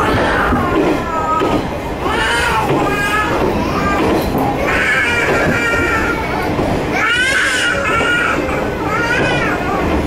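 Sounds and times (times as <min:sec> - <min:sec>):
young child wailing: 0:00.0 - 0:01.5
diesel railcar rumble: 0:00.0 - 0:10.0.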